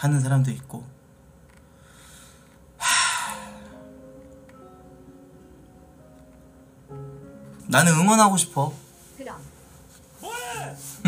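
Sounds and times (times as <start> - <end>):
man breathing softly: 1.6 - 3.9.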